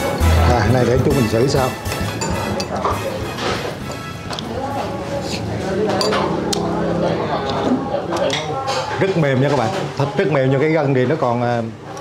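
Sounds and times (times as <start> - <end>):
background music: 0.0 - 4.6
utensils clinking ceramic bowl: 1.9 - 4.1.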